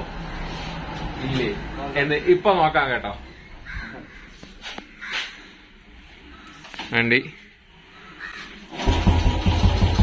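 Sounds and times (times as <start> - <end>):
crow cawing: 3.3 - 8.7.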